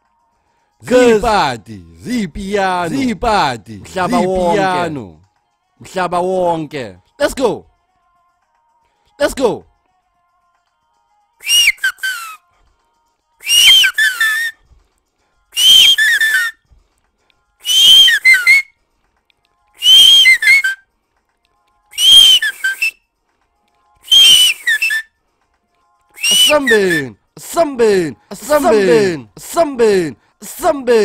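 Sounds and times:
high whistle-like sample: 2.6 - 5.1, 13.4 - 14.6, 15.6 - 16.6, 17.6 - 18.7, 19.8 - 20.8, 22.0 - 23.0, 24.0 - 25.0, 26.2 - 27.2, 28.4 - 29.3.

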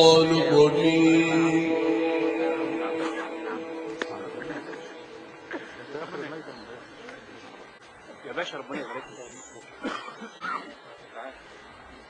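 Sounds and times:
indistinct vocal utterances: 0.0 - 5.9.

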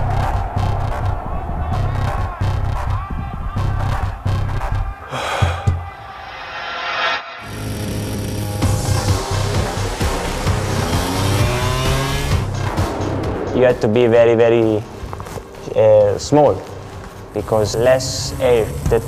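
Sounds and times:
background music with bass: 0.0 - 19.0
rising whoosh: 5.2 - 14.0
racing motorcycle engines: 7.4 - 15.7, 16.6 - 19.0.

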